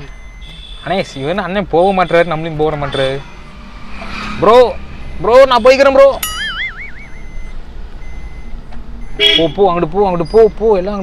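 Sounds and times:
wavering high tone: 3.2 - 7.6
faint short high beeps: 6.1 - 9.4.

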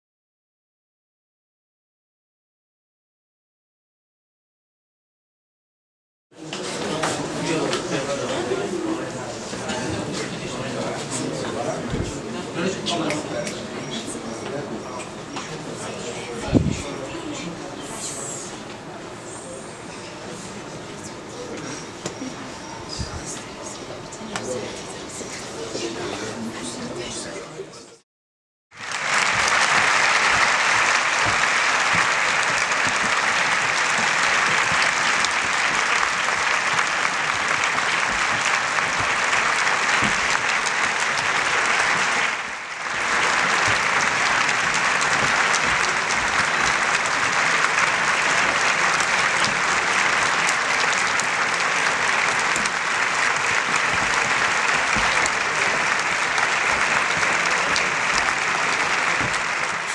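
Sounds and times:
audience applauding: 28.7 - 59.9.

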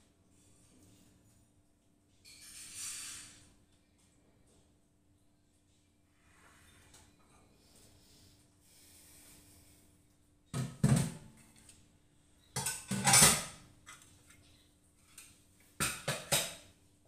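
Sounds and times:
pots and dishes clattering: 10.6 - 11.5, 12.4 - 14.5, 15.1 - 16.7.

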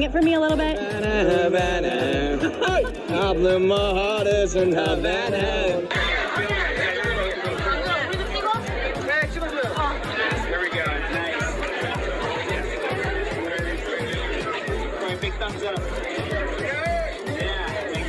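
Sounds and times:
crowd chattering: 0.0 - 18.0
music with steady low beat: 0.0 - 18.0.

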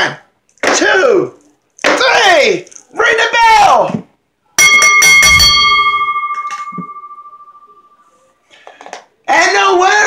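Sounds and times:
ring bell ringing: 4.6 - 8.1.

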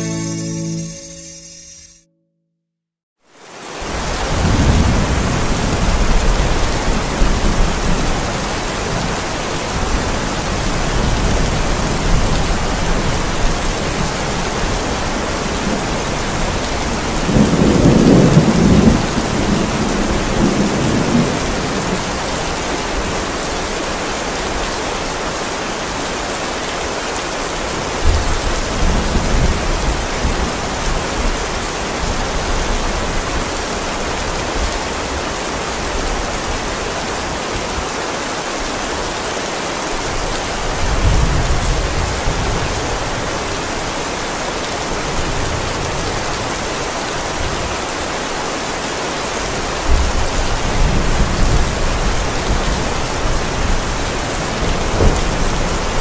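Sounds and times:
heavy rain falling: 3.3 - 56.0
thunder rumbling: 15.6 - 22.3, 49.9 - 56.0.

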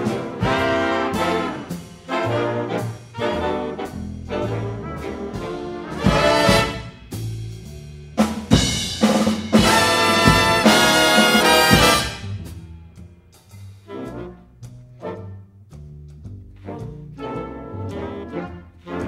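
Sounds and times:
drum hits: 0.0 - 3.0, 4.6 - 13.0
big band playing jazz: 0.0 - 19.0.

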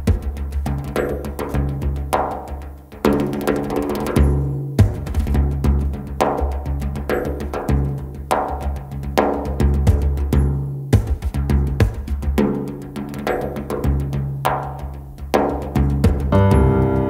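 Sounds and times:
struck percussion hits: 16.0 - 17.0.

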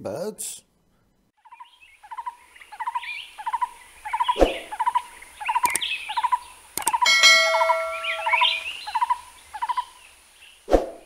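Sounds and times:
small animal chattering calls: 1.5 - 7.1.

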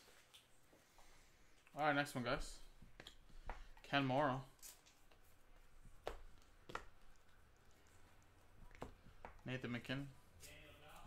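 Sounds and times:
man talking: 1.7 - 2.7, 9.4 - 11.0.

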